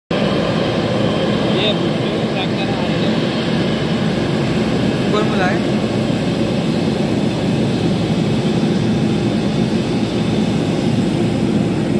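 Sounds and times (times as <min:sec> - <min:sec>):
jet engines running: 0:00.1 - 0:11.9.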